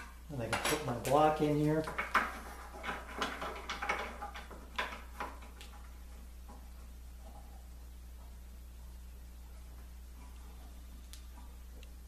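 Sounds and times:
steady low hum: 0.0s - 12.0s
wooden and metal knocks and clicks: 1.8s - 6.6s.

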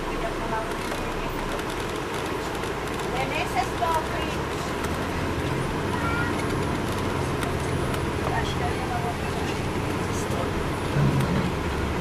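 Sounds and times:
bus engine drone: 0.0s - 12.0s
road noise: 0.0s - 12.0s.

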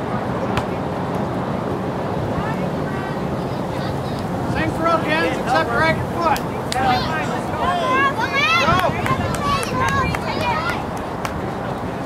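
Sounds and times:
faint distant voices: 0.0s - 12.0s
wind noise on microphone: 0.0s - 12.0s.

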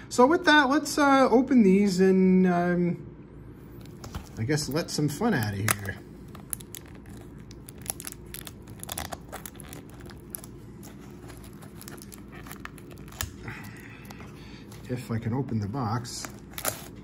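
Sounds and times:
fingernails scratching shrink-wrap: 5.3s - 13.5s, 16.2s - 17.0s.

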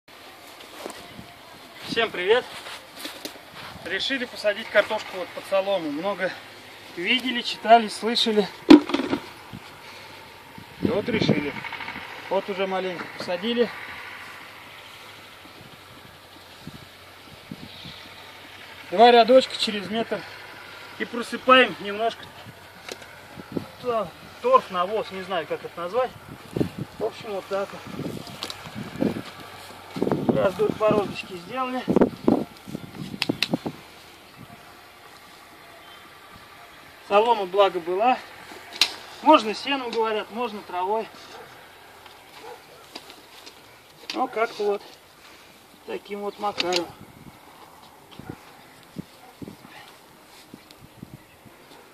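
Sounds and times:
engine idling hum: 0.1s - 51.9s.

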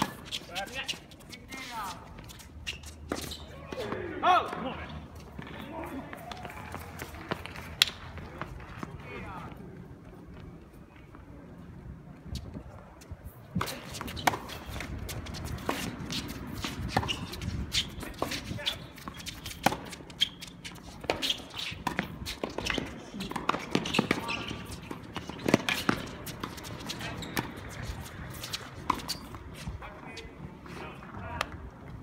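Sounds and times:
shuffling footsteps on hard court: 0.0s - 32.0s
tennis balls struck by rackets: 13.6s - 29.5s.

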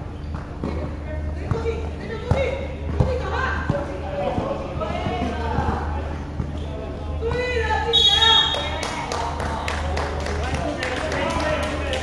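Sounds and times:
players' voices: 0.6s - 12.0s.

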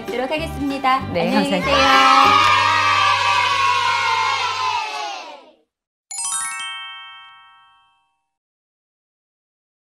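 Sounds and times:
crowd of children cheering: 1.6s - 5.6s.

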